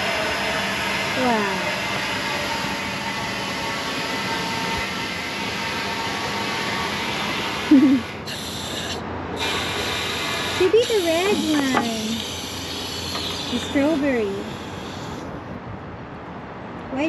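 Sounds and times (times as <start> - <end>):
compressed air hissing: 0.0 - 15.4.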